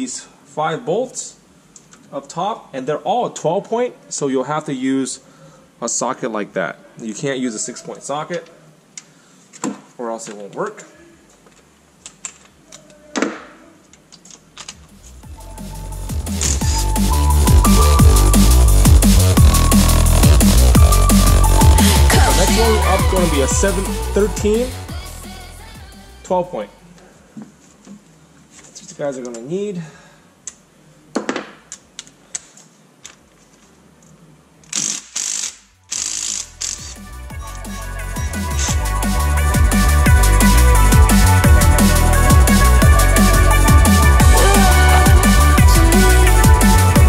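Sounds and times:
electronic music with heavy bass: 15.2 - 26.2, 36.4 - 47.0.

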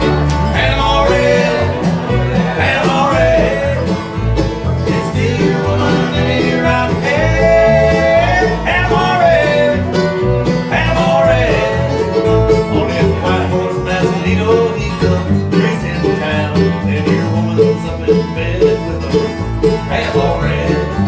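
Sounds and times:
acoustic guitar: 0.0 - 21.0
mandolin: 0.0 - 21.0
upright bass: 0.0 - 21.0.

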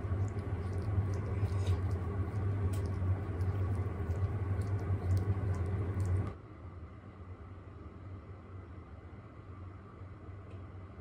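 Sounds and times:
dog licking fingers: 0.0 - 6.4
low room hum: 0.0 - 11.0.

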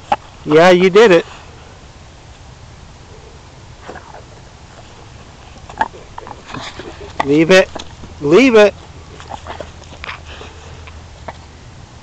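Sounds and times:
light rustling: 3.8 - 11.6
dog breathing and panting: 4.2 - 11.1.

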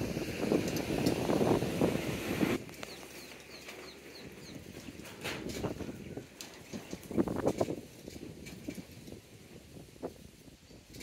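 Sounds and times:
wind on microphone: 0.0 - 3.0, 4.1 - 11.0
small bird chirping: 2.7 - 5.0.

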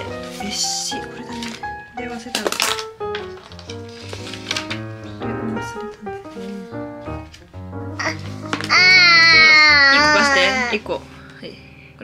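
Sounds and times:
baby wailing: 8.0 - 10.8.

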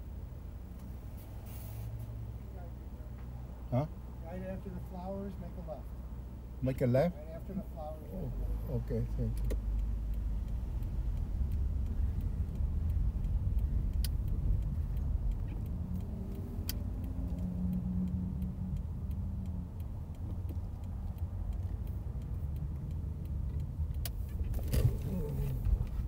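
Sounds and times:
car engine and tyres rumbling: 0.0 - 26.0.

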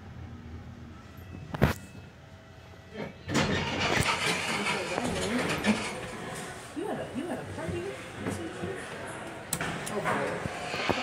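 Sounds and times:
steady noisy background: 0.0 - 11.0.

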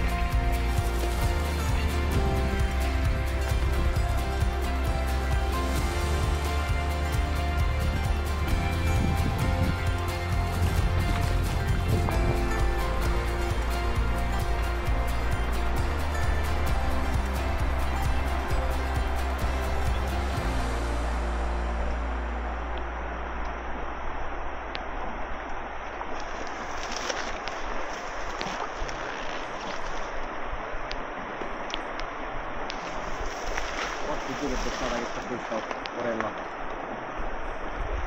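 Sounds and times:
background music with steady beat: 0.0 - 23.2
fast-flowing river rushing: 0.0 - 38.0.

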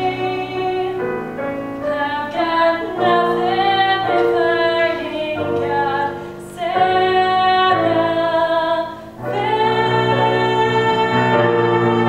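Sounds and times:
woman singing: 0.0 - 1.2, 1.8 - 12.0
piano accompaniment: 0.0 - 12.0.

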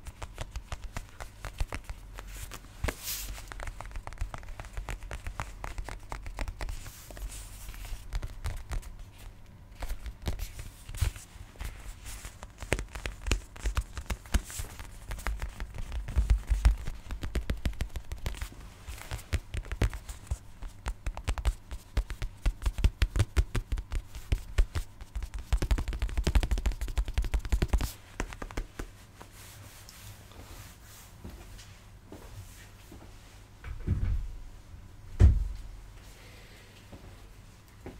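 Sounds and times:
tapping and scratching on object: 12.3 - 28.9.

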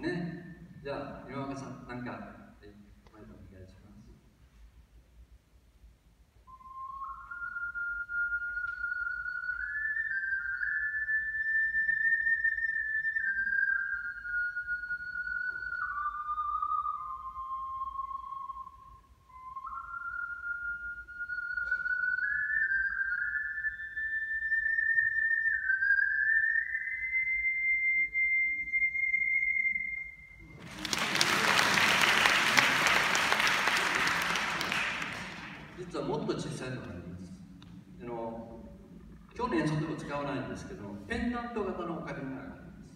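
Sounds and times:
ocarina melody: 6.4 - 42.9
audience applause: 30.4 - 35.8.

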